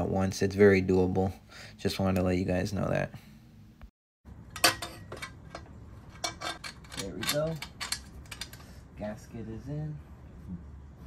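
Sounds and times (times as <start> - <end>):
metal pipe clinking against metal: 4.5 - 8.7.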